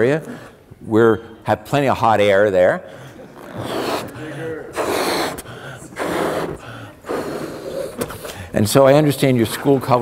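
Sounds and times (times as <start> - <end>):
man gasping breaths: 2.8 - 8.6
man puffing into a balloon: 3.2 - 8.5.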